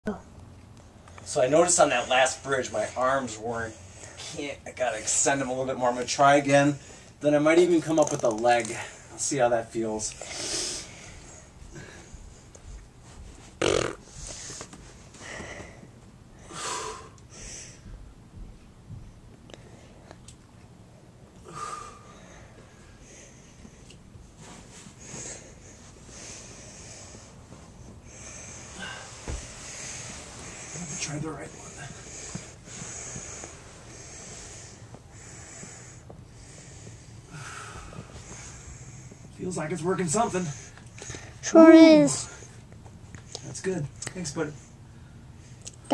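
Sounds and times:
man breathing hard: 14.0s - 18.1s, 21.4s - 23.9s, 24.8s - 39.4s.

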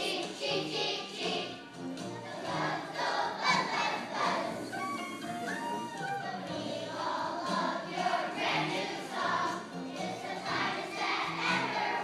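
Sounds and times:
children's choir singing: 0.0s - 12.0s.

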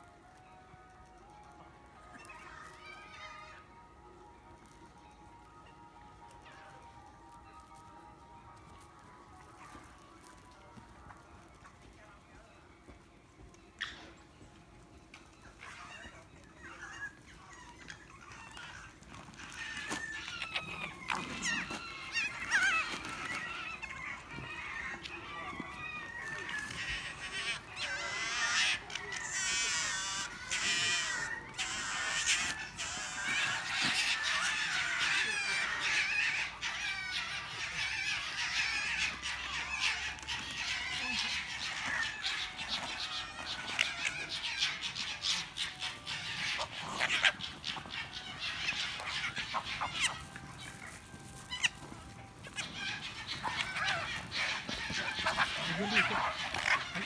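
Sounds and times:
foxes chattering calls: 0.3s - 12.2s, 13.5s - 57.0s.

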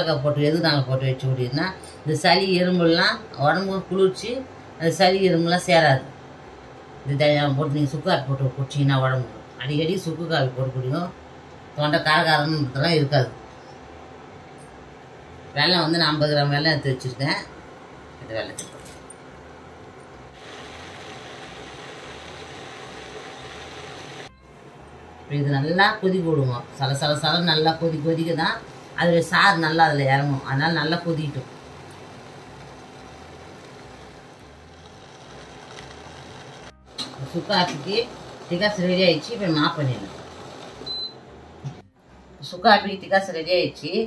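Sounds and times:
water boiling in pot: 20.3s - 24.3s, 27.0s - 41.2s.

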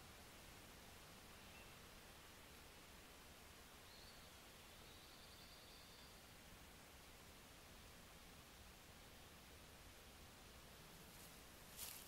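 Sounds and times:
faint room-tone hiss: 0.0s - 12.0s.

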